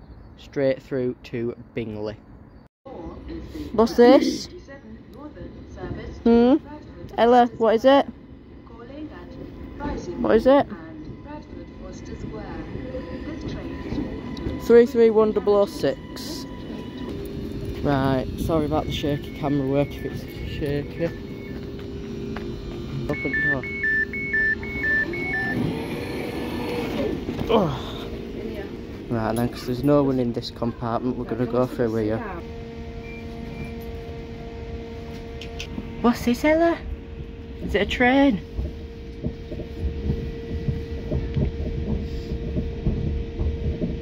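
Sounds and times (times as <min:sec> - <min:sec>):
train low rumble: 0:00.0 - 0:44.0
steady electric hum: 0:03.0 - 0:44.0.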